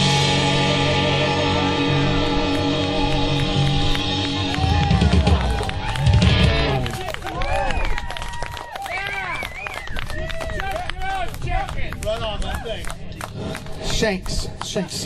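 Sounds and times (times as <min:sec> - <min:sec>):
electric guitar chords: 0:00.0 - 0:07.0
crowd whooping and shouting: 0:03.6 - 0:11.2.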